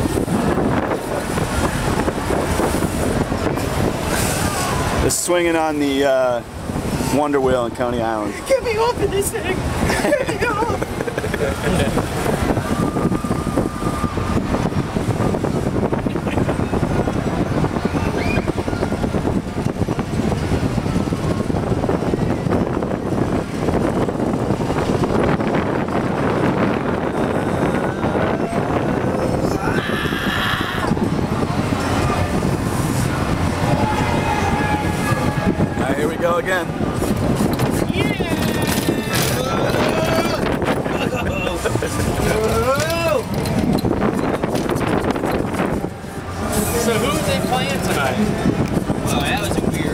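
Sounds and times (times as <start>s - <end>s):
ride car ambient noise: 0.0s - 49.9s
indistinct voices: 26.2s - 49.9s.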